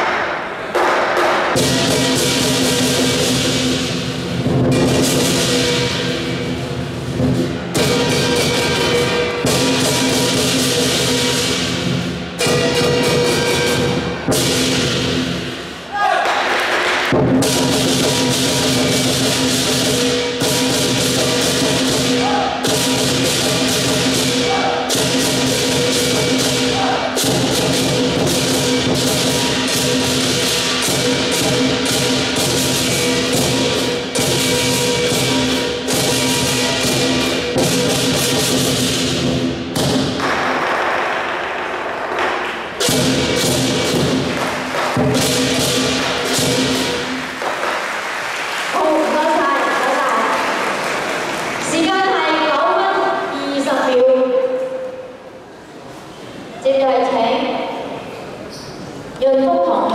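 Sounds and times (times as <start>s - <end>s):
drum: 0.0s - 15.8s, 16.4s - 41.3s, 42.0s - 48.8s
cymbals: 0.0s - 56.5s.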